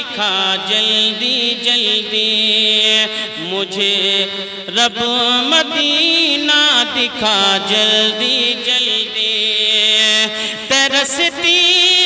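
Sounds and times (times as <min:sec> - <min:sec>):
man singing into a microphone: 0:00.0 - 0:12.0.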